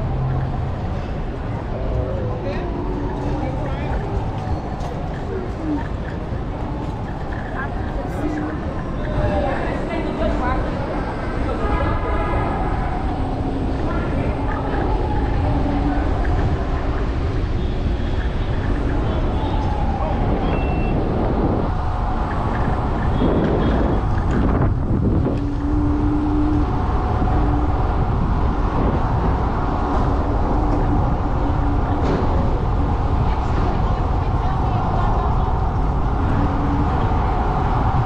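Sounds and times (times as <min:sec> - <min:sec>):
street traffic noise: 0:00.0 - 0:38.0
wind rumble on microphone: 0:00.0 - 0:38.0.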